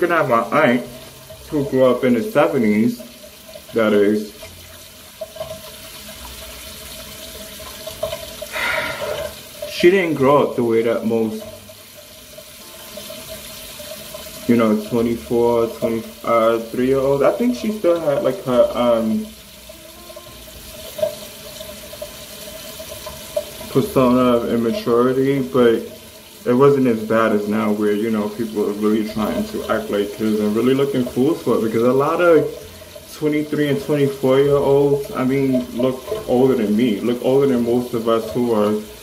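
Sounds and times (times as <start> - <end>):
faucet water running: 0.0 - 39.0.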